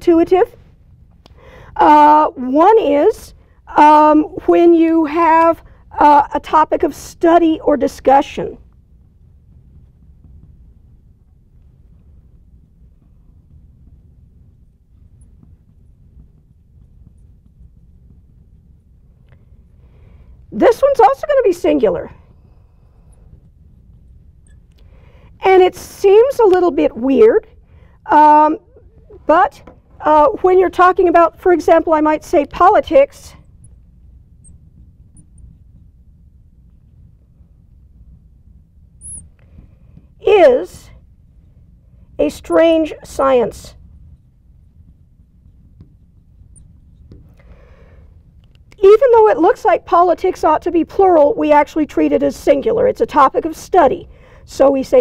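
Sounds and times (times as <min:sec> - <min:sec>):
low room hum: 0:00.0 - 0:55.0
marker squeaking on glass: 0:39.0 - 0:39.3
marker tapping and scratching on glass: 0:44.1 - 0:47.5.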